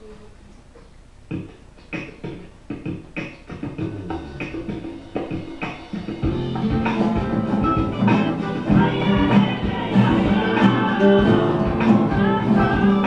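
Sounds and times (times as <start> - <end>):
classical guitars strumming chords: 5.9 - 13.0.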